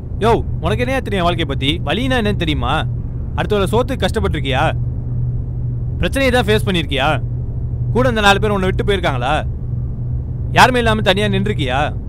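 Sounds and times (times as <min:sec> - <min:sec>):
steady low hum: 0:00.0 - 0:12.0
man speaking: 0:00.2 - 0:04.8, 0:06.0 - 0:07.2, 0:08.0 - 0:09.4, 0:10.5 - 0:12.0.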